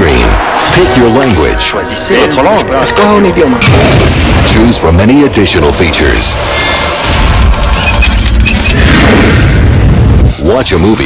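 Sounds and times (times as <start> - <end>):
film music: 0.0 - 10.8
deep booming rumble: 3.6 - 5.0, 8.7 - 10.4.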